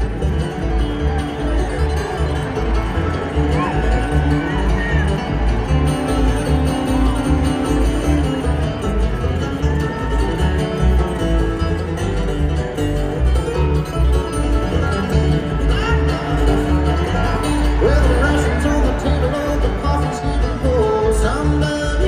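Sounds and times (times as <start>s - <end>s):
acoustic guitars: 0.0s - 22.0s
banjo: 0.0s - 22.0s
upright bass line: 0.0s - 22.0s.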